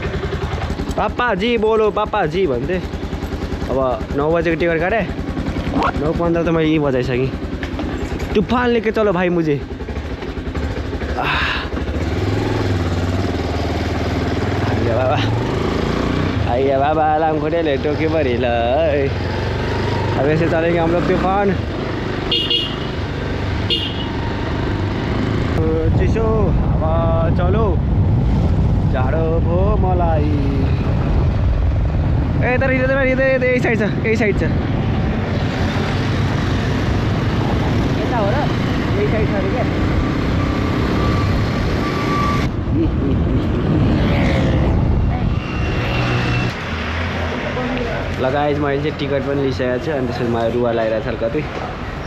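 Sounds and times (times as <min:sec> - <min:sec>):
motorbike engine running: 0:00.0 - 0:27.7
wind rush on microphone: 0:25.6 - 0:35.5, 0:42.3 - 0:46.0.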